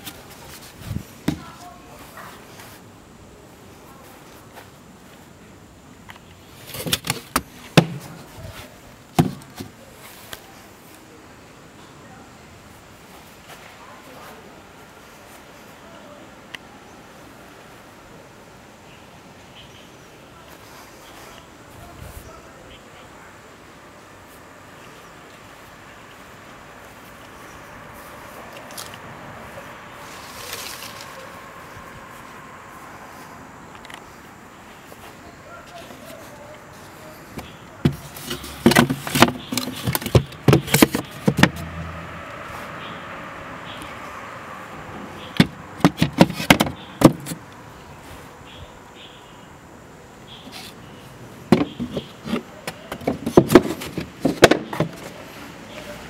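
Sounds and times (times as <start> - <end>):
outdoor background hiss: 0.0 - 56.0
knocks and clatter of wooden kennel: 51.5 - 55.0.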